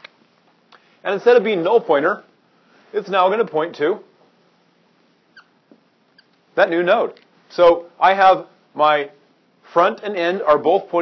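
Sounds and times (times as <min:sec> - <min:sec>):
marker squeak on whiteboard: 0:05.3 - 0:05.6.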